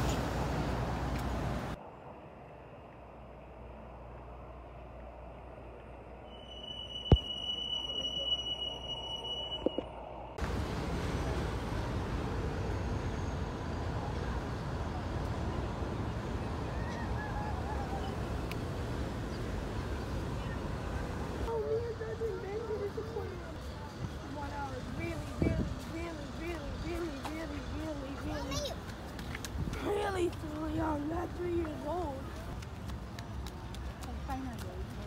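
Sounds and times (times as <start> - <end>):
city street traffic: 0.0 - 35.0
high steady squeal: 6.2 - 10.4.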